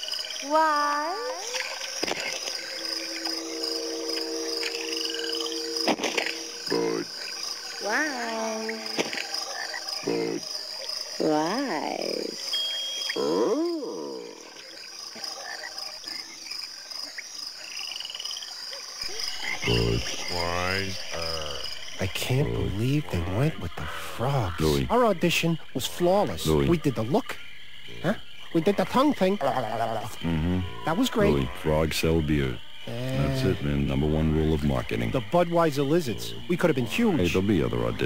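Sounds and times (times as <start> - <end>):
frogs croaking: 0.0 - 38.0
steady high-pitched tone: 2.4 - 8.4.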